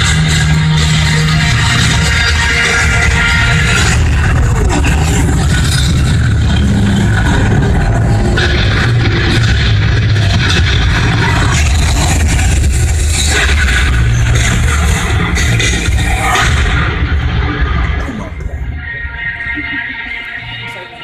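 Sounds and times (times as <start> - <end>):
film trailer music: 0.0 - 21.0.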